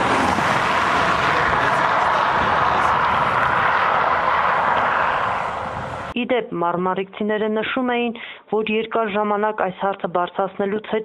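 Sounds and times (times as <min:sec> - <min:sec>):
car driving on asphalt: 0:00.0 - 0:06.2.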